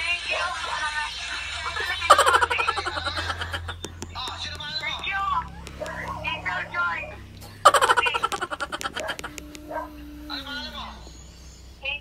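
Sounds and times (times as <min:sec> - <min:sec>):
man laughing loudly: 0:01.6 - 0:03.9, 0:07.4 - 0:09.7.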